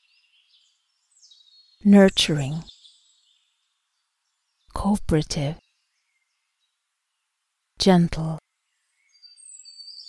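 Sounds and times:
faint birdsong: 0.0 - 10.0.

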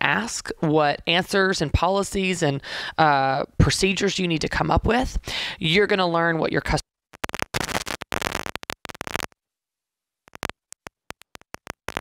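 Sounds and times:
stuttering scratch-like noise bursts: 7.2 - 9.3, 10.3 - 12.0.

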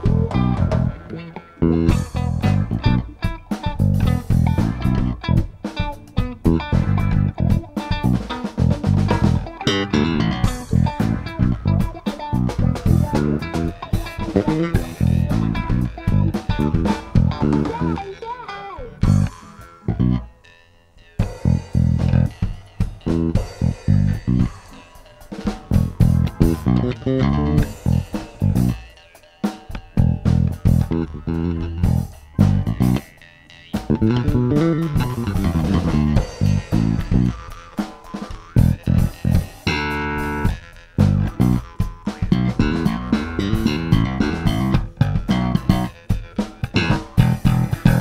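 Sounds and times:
drum kit: 0.0 - 20.3, 21.1 - 48.0
bass guitar: 0.0 - 48.0
guitar: 0.0 - 48.0.

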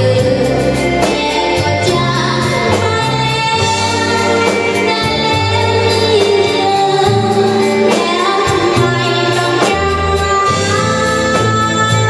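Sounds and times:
electric bass: 0.0 - 12.0
electric guitars: 0.0 - 12.0
steady drum beat: 0.0 - 12.0
woman singing into a microphone: 0.0 - 12.0.

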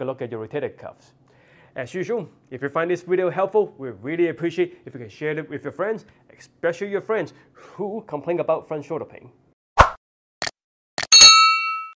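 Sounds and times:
bright bell-like ding: 11.1 - 12.0.

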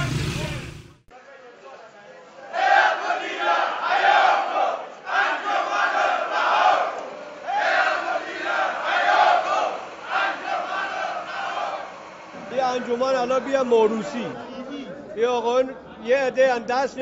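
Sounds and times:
crowd of men chanting: 2.4 - 14.7.

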